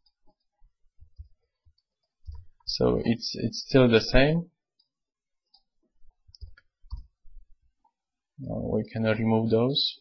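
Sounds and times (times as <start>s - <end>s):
computer mouse clicking: 4.7s - 7.2s.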